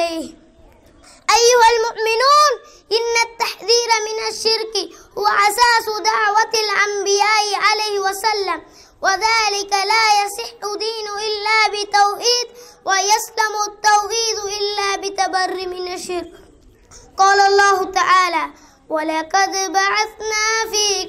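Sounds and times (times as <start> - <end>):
boy chanting melodic recitation: 0.0 - 21.0.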